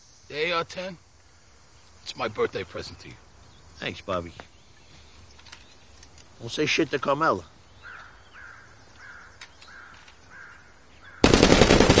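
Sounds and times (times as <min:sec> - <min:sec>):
bird calling: 0:01.2 - 0:11.4
automatic rifle fire: 0:11.2 - 0:12.0.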